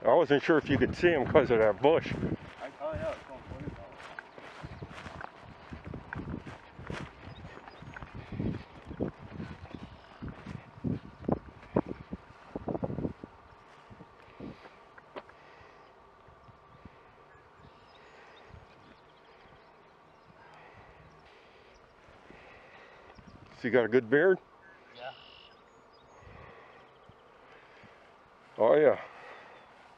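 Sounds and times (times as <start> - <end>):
footsteps through tall grass: 0.5 - 15.7, 26.3 - 29.9.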